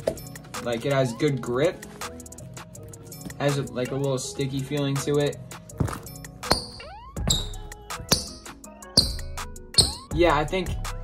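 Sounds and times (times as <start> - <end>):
background music: 0.0 - 11.0
shoes squeaking on hardwood floor: 2.8 - 4.2, 5.7 - 10.1.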